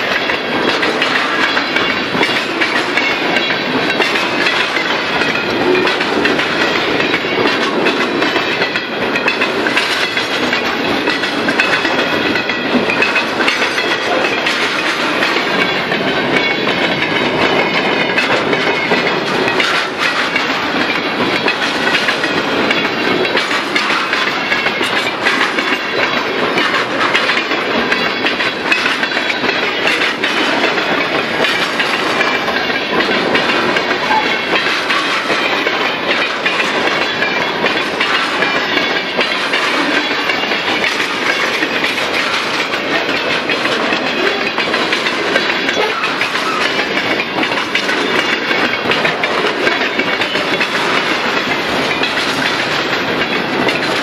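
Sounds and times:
freight train rolling past: 0:00.0 - 0:54.0
sharp clicks of train wheels: 0:00.0 - 0:54.0.

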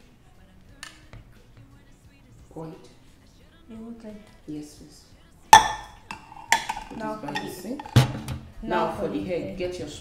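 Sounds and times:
glass cup and spoon clinking: 0:05.6 - 0:08.0.

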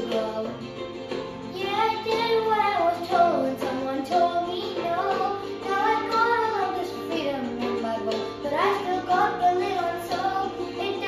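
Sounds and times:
girl singing a ballad: 0:00.0 - 0:00.8, 0:01.5 - 0:11.0.

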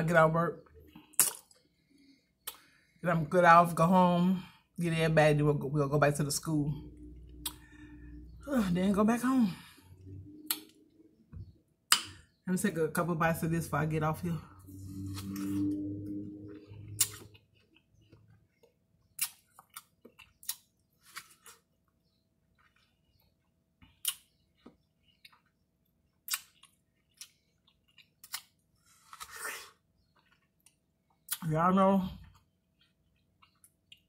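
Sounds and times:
wet mouth clicks and smacks: 0:01.1 - 0:01.6, 0:10.4 - 0:10.8, 0:26.2 - 0:27.3
chewing and slurping watermelon: 0:14.7 - 0:31.4.

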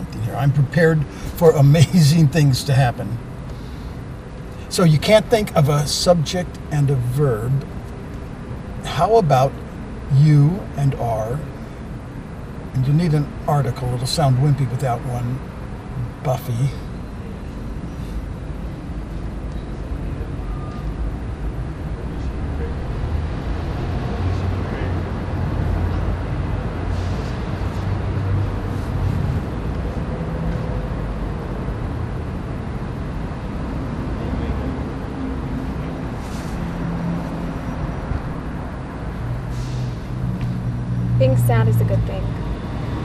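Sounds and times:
road and traffic noise: 0:00.0 - 0:43.0
car engine rumble from inside: 0:37.2 - 0:42.6.

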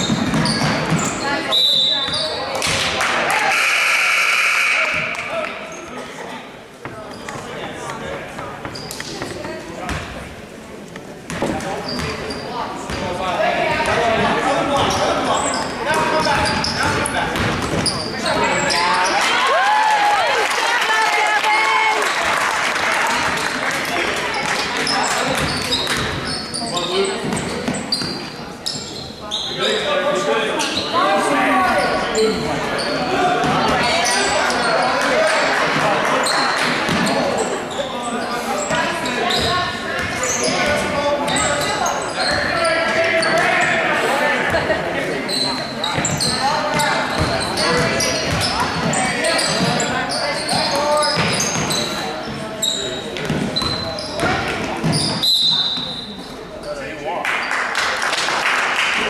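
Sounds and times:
basketball bouncing on hardwood: 0:00.1 - 0:01.1.

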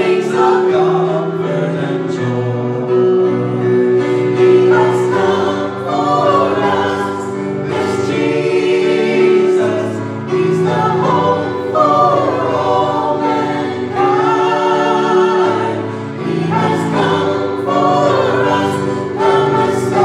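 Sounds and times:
group singing gospel in harmony: 0:00.0 - 0:20.0
instrumental accompaniment: 0:00.0 - 0:20.0.

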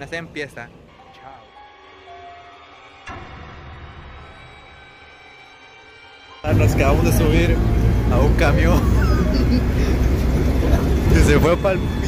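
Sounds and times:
bus engine and road rumble: 0:06.5 - 0:12.0.

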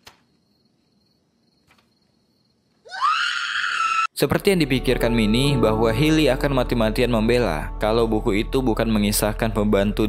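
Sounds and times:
woman screaming: 0:02.9 - 0:04.1.

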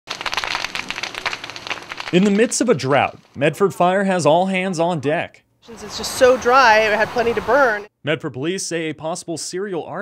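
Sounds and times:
brush fire crackling: 0:00.0 - 0:04.5, 0:05.7 - 0:07.8.

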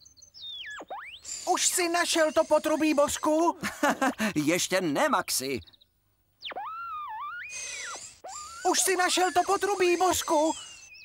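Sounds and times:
warbling electronic detector tone: 0:06.5 - 0:11.0.

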